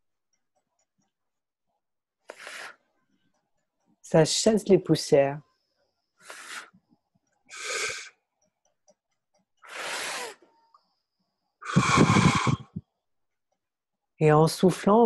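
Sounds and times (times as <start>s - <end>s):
breath puffs through lips: 6.2s - 6.8s, 9.6s - 10.5s, 11.6s - 12.8s.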